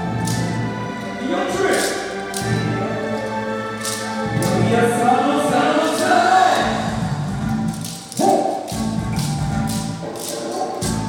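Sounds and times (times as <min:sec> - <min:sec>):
wooden clappers clacking: 0:00.0 - 0:11.0
dance music with singing: 0:04.3 - 0:07.2.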